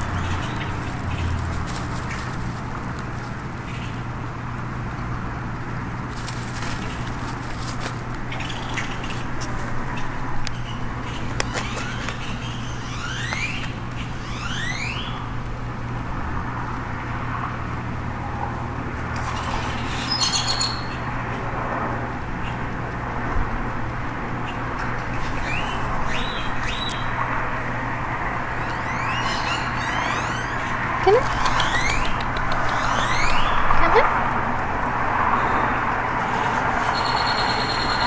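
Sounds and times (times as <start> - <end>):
small birds chirping: 0.0 - 4.1, 6.1 - 15.2, 24.4 - 27.2, 28.5 - 34.2.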